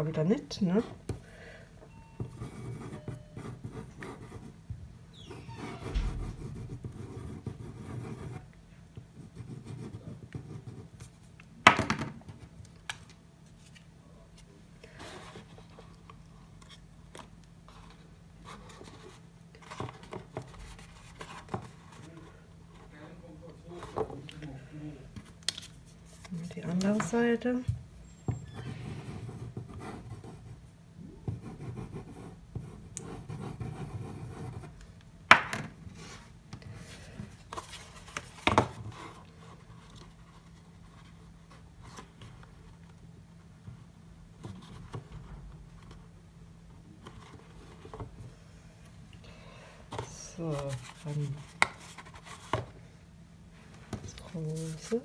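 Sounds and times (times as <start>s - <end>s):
steady low hum: 0.0s - 11.6s.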